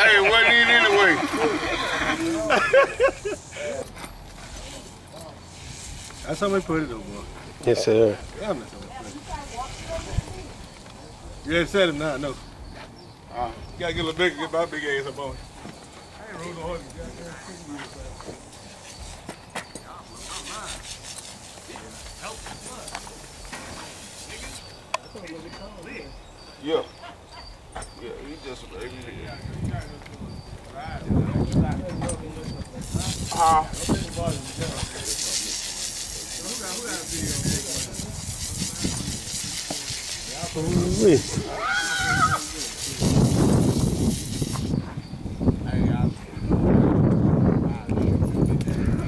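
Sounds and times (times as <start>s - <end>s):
horse whinnying: 0.0s - 2.5s, 41.4s - 42.6s
rough noisy sound: 32.4s - 44.8s.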